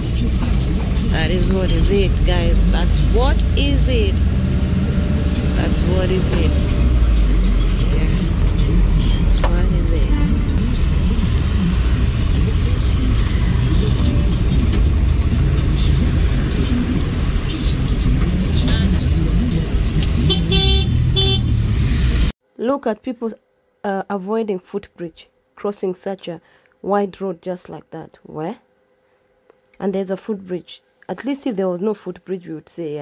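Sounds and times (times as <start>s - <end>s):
street voices: 0.0s - 21.9s
engine and road rumble: 0.0s - 22.4s
car horns tooting: 20.0s - 21.6s.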